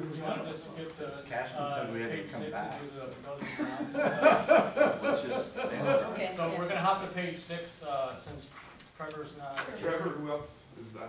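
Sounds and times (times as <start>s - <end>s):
people talking and chuckling: 1.6s - 6.7s.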